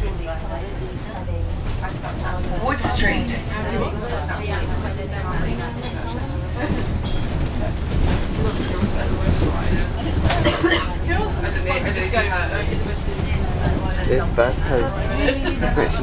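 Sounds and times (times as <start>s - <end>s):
bus engine drone: 0.0s - 16.0s
passenger chatter: 0.0s - 16.0s.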